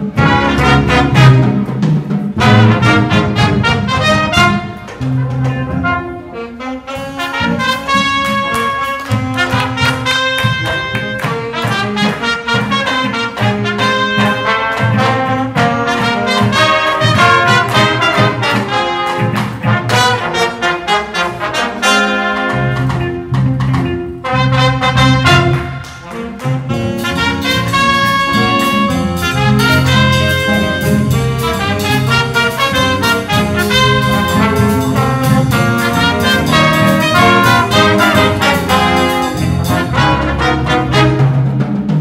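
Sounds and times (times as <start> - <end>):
drum kit: 0.0 - 42.0
horns playing jazz: 0.0 - 42.0
electric guitar: 21.9 - 41.1.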